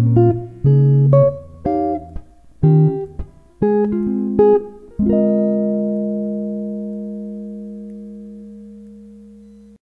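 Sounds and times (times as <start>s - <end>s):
jazz guitar chord ringing: 0.0s - 9.8s.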